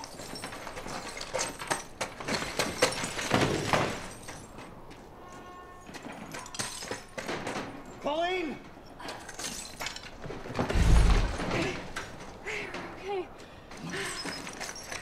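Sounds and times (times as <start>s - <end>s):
scrapes: 10.7s - 11.9s.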